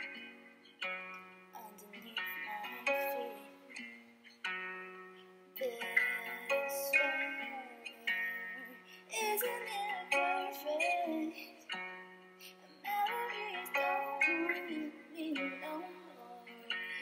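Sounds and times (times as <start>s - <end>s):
plucked-string accompaniment: 0.0s - 17.0s
woman singing into microphone: 1.5s - 4.0s, 5.6s - 11.8s, 12.5s - 17.0s.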